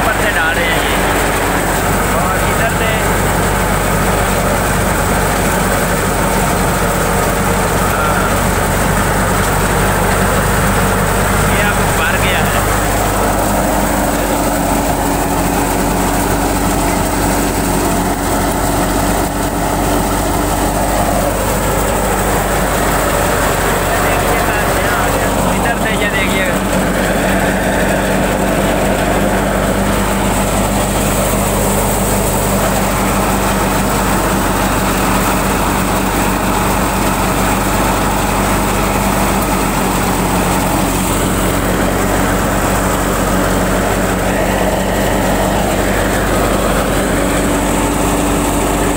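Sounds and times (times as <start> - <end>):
thresher mechanical din: 0.0 - 48.9
tractor engine hum: 0.0 - 48.9.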